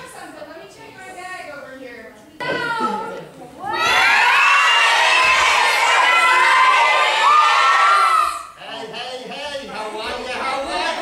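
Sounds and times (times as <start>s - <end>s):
children shouting and cheering: 3.6s - 8.6s.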